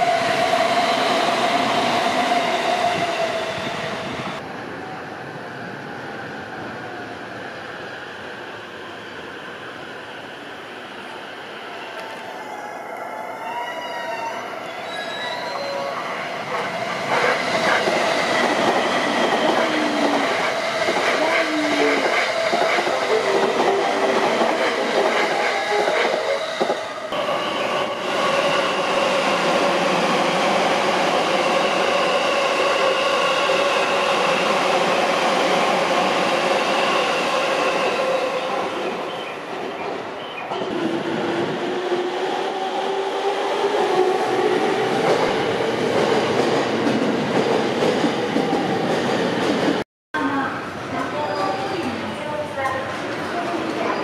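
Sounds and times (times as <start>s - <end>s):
train wheels on rails: 16.1s - 49.8s.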